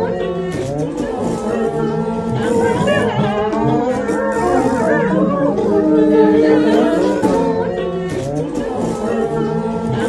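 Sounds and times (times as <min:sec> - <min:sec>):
voices making music: 0:00.0 - 0:10.0
long steady sung note: 0:01.6 - 0:08.0.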